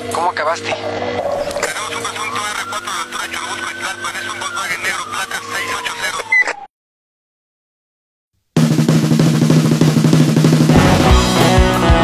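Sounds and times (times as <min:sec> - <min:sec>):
snare drum roll: 0:08.6 - 0:12.0
rock band playing: 0:10.1 - 0:12.0.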